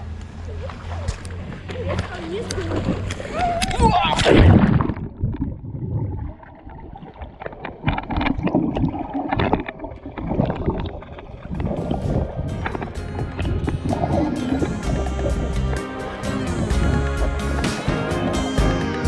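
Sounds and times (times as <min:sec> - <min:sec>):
swimming strokes underwater: 0:00.5 - 0:18.8
exhaled bubbles gurgling: 0:03.7 - 0:15.8.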